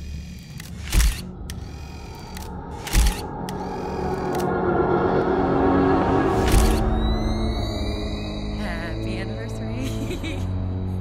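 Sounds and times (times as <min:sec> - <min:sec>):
low hum: 0:00.0 - 0:11.0
music: 0:00.6 - 0:11.0.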